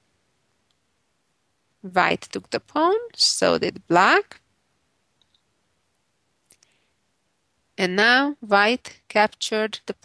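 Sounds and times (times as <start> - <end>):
soft clicks: 5.2 - 5.5.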